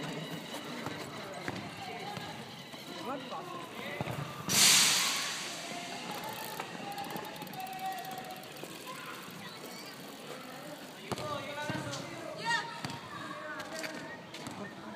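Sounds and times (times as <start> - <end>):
teenagers talking and calling: 0.0 - 14.9
rush of noise: 4.5 - 6.4.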